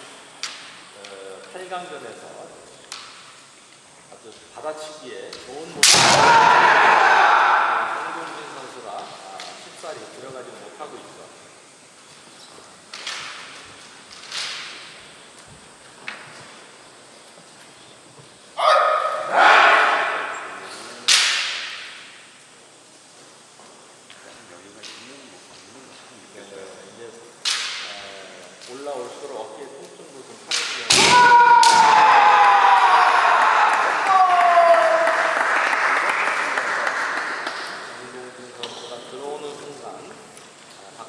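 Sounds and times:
bamboo swords striking: 0:05.8 - 0:06.6, 0:19.6 - 0:22.1, 0:27.5 - 0:27.9, 0:30.5 - 0:32.0
fencers shouting: 0:05.8 - 0:08.8, 0:18.6 - 0:20.8, 0:30.9 - 0:35.6.

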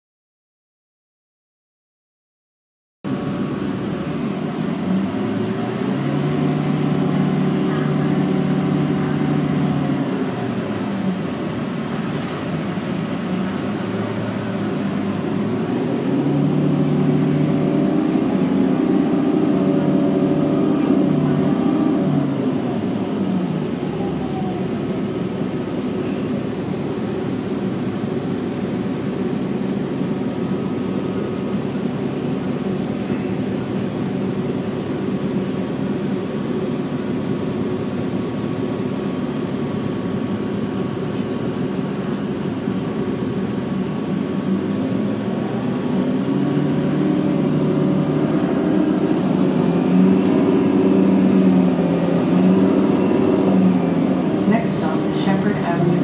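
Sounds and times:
bus engine drone: 0:03.0 - 0:56.0.

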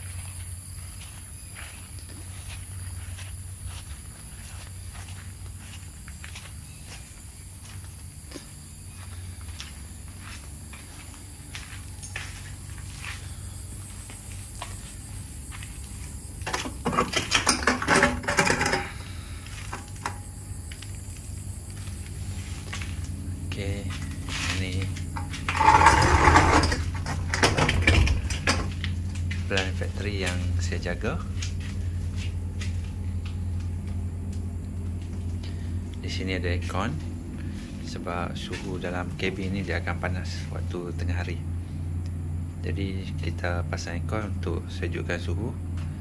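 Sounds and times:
air-conditioning hum: 0:00.0 - 0:46.0
footsteps outdoors: 0:00.0 - 0:46.0
steady low rumble: 0:00.0 - 0:46.0
rough scraping noise: 0:24.3 - 0:28.6.

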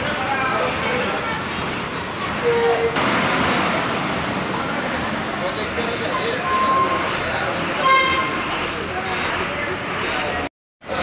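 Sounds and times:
buses running: 0:00.0 - 0:11.0
bus horn toots: 0:07.8 - 0:08.4.

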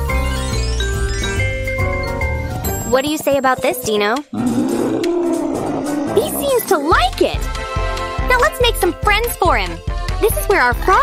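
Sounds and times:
light background music: 0:00.0 - 0:11.0
dinosaur roar: 0:04.3 - 0:06.9.

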